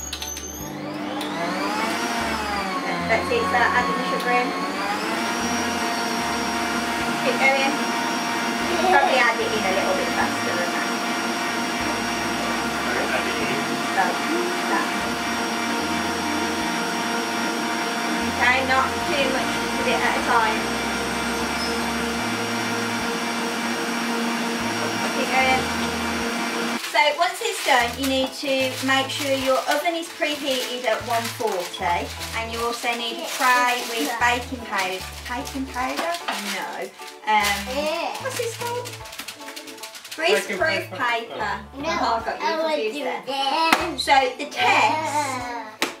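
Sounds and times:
stand mixer motor whining: 0.1s - 26.8s, 27.6s - 36.4s.

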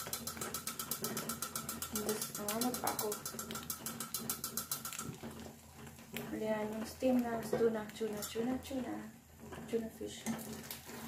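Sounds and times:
saucepan lid rattling: 0.0s - 5.2s.

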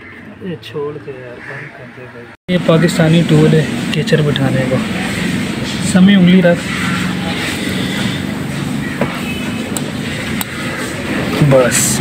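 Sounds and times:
steady mechanical hum: 2.0s - 12.0s.

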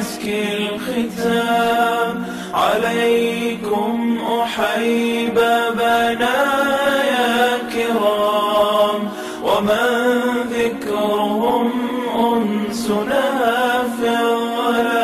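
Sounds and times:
voices singing: 0.0s - 15.0s.

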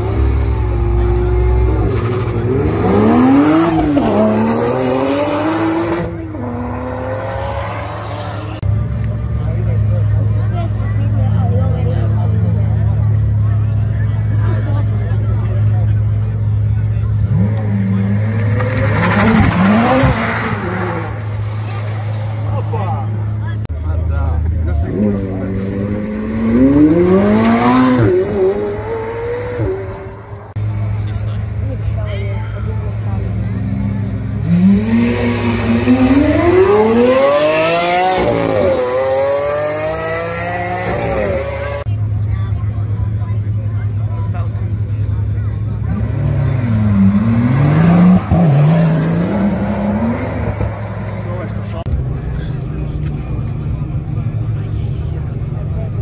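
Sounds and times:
cars accelerating past: 0.0s - 8.7s, 17.2s - 22.7s, 24.8s - 31.0s, 32.9s - 41.9s, 45.8s - 51.9s.

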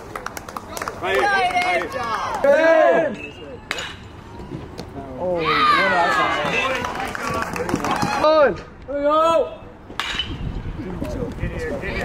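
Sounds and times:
people shouting and chattering: 0.0s - 12.0s
bat striking baseball: 3.7s - 4.1s, 9.9s - 10.6s.

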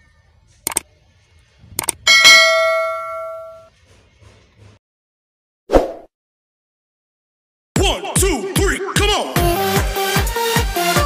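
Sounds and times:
double mouse clicks: 1.8s - 2.0s
bright bell ding: 2.1s - 3.7s.

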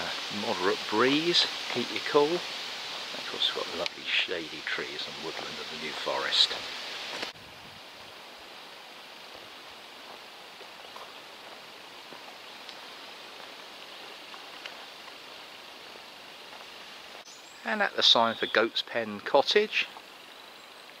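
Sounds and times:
breeze through trees: 0.0s - 21.0s
faint ticks: 12.6s - 12.8s, 14.3s - 15.2s.

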